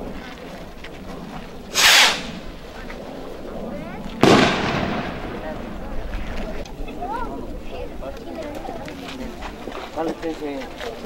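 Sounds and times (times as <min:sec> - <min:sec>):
fireworks bangs: 0:04.2 - 0:06.2.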